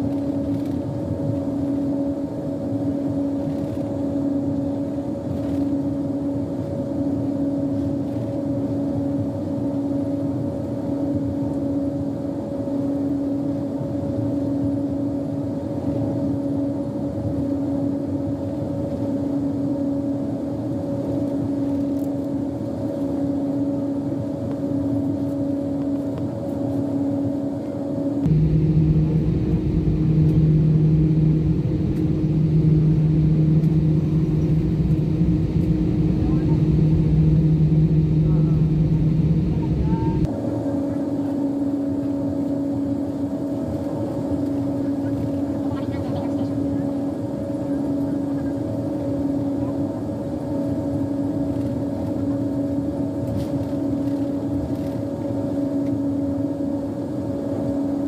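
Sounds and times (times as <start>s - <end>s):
jet engines humming in cabin: 0.0s - 58.0s.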